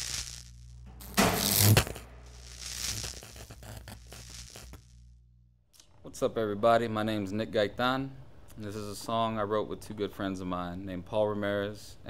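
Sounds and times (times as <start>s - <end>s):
loud crackle: 0.0s - 5.1s
steady low hum: 0.0s - 11.4s.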